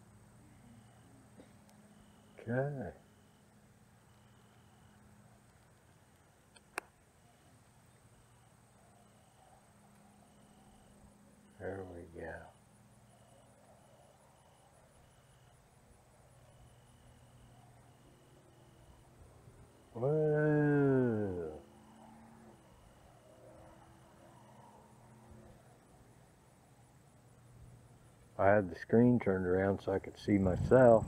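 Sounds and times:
faint high tone: 0:19.8 - 0:25.6
man's drawn-out wordless voice: 0:20.0 - 0:21.7, 0:28.4 - 0:31.0.

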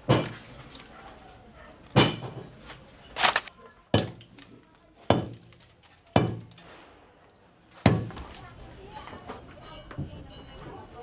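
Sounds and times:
hammer breaking ceramic tile: 0:04.0 - 0:04.3, 0:05.1 - 0:05.6, 0:06.2 - 0:06.6.

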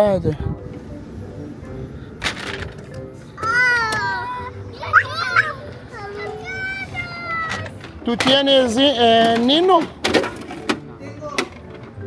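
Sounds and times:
hard plastic clacks: 0:07.5 - 0:12.0.

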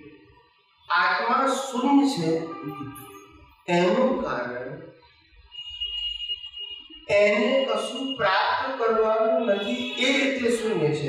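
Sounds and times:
steady high-pitched tone: 0:00.9 - 0:10.8.

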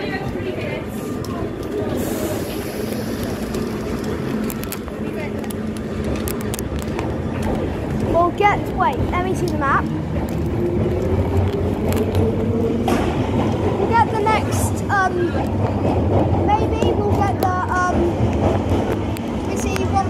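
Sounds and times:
low rumble and hubbub: 0:00.0 - 0:20.0
passers-by talking: 0:00.0 - 0:20.0.

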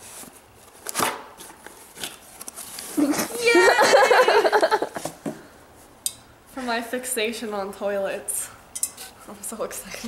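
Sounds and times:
woman speaking: 0:03.0 - 0:04.3, 0:06.6 - 0:08.6, 0:09.3 - 0:10.0.

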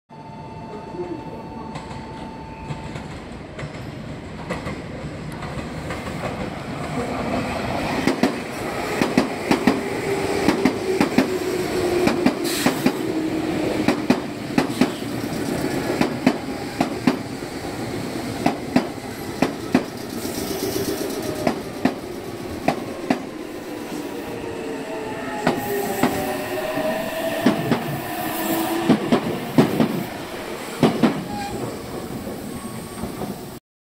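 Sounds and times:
train wheel squeal: 0:00.2 - 0:03.1, 0:19.9 - 0:21.6, 0:30.6 - 0:33.6
train wheels clicking over rail joints: 0:13.8 - 0:17.3, 0:18.3 - 0:23.3.

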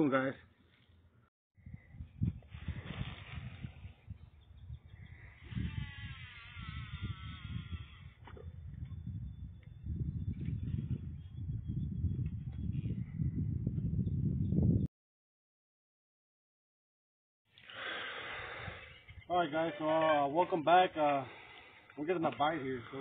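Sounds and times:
wind on microphone: 0:01.6 - 0:14.9.

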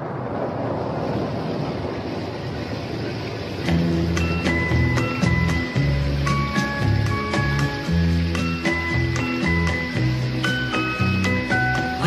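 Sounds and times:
rain rushing: 0:00.0 - 0:12.0.

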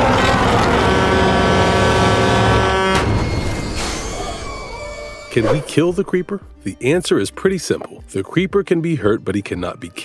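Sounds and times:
loud horn-like blare: 0:00.0 - 0:03.8.

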